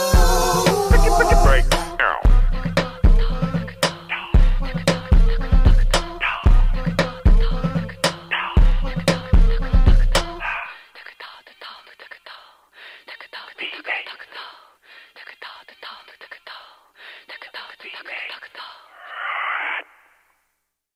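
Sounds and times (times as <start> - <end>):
filtered voice sample: 0.0 - 2.3
hip-hop beat and bass: 0.0 - 10.6.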